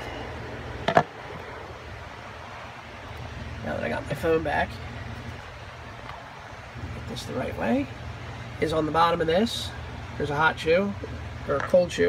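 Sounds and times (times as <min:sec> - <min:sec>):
steady low background noise: 0:00.0 - 0:12.0.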